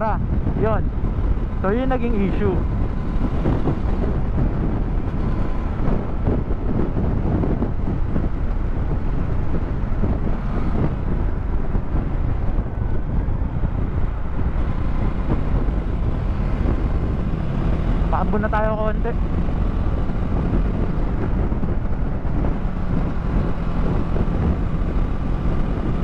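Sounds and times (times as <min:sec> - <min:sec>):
motorcycle engine: 0:00.0 - 0:26.0
road noise: 0:00.0 - 0:26.0
wind rumble on microphone: 0:00.0 - 0:26.0.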